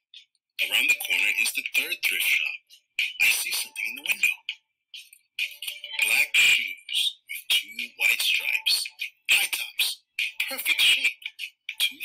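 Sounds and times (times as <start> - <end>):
person reading aloud: 0.6 - 12.0.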